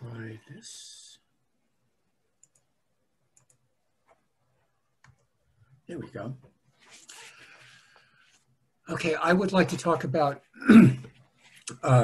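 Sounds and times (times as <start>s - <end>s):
computer mouse clicks: 2.4s - 2.7s, 3.3s - 4.2s.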